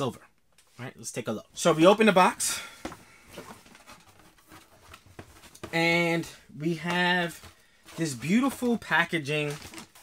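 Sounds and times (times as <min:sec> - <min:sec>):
soft handling sounds: 0:01.6 - 0:10.0
cardboard box rustling and scraping: 0:03.3 - 0:05.8.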